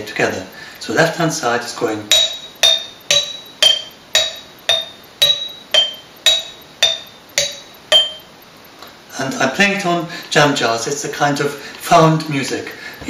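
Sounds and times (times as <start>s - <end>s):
glass jars struck with sticks: 2.0s - 8.3s.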